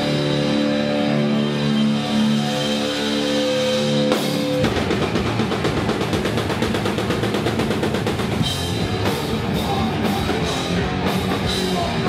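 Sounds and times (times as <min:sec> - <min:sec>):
heavy rock band playing: 0:00.0 - 0:12.0
rapid drum hits: 0:04.4 - 0:12.0.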